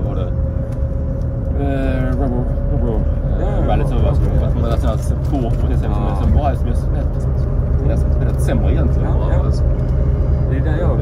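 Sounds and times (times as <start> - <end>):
people talking: 0.0 - 0.3, 1.5 - 9.7, 10.4 - 11.0
bus engine rumble: 0.0 - 11.0.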